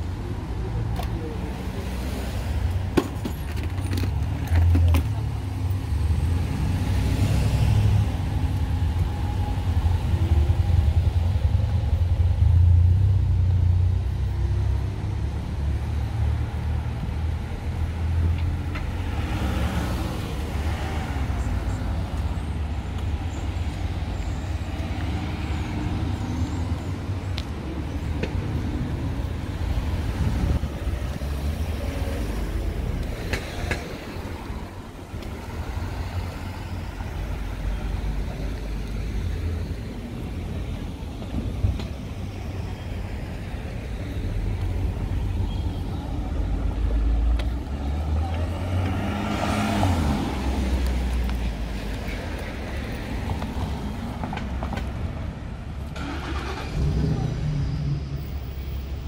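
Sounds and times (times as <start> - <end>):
cars driving past: 0.0 - 59.0
low traffic rumble: 0.0 - 59.0.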